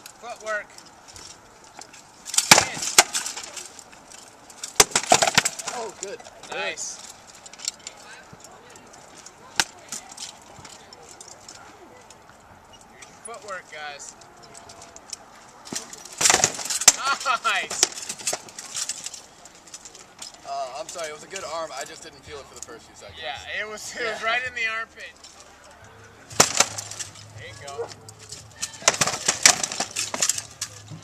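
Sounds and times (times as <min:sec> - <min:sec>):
swords striking wooden shields: 0:02.3 - 0:03.6, 0:04.6 - 0:05.9, 0:15.7 - 0:18.8, 0:26.3 - 0:27.2, 0:28.6 - 0:31.0.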